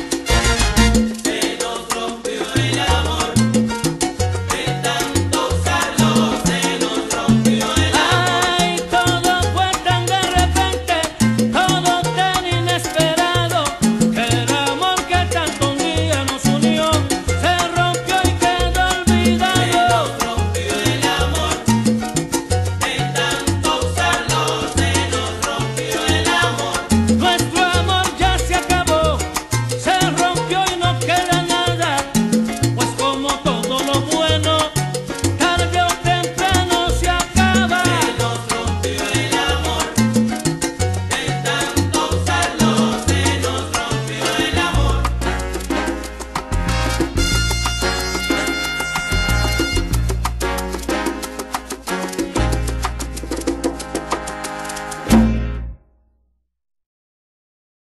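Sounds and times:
salsa band music: 0.0 - 55.8
bass line: 0.0 - 55.9.

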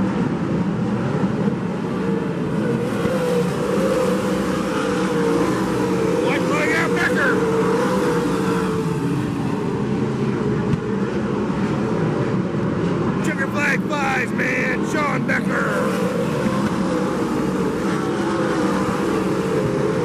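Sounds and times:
race car engines running: 0.0 - 20.0.

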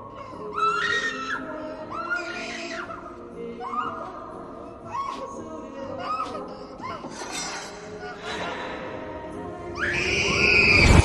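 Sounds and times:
high wavering whimper-like cry: 0.1 - 8.4.

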